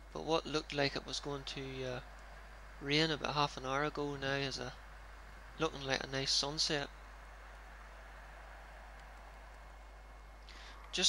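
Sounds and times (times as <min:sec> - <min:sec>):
faint steady hiss: 0:00.0 - 0:11.0
low hum: 0:00.0 - 0:11.0.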